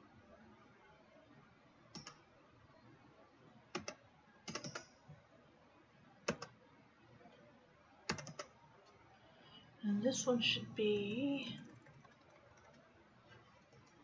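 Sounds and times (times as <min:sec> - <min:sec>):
computer keyboard and mouse clicks: 0:01.9 - 0:02.3, 0:03.7 - 0:05.1, 0:06.2 - 0:06.6, 0:08.1 - 0:09.0, 0:11.6 - 0:14.0.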